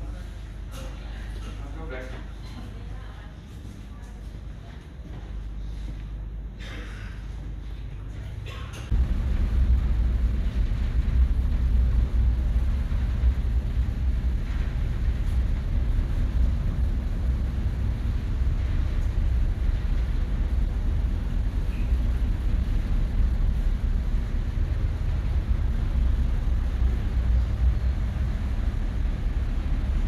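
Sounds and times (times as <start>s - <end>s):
ferry engine rumble: 5.6s - 30.0s.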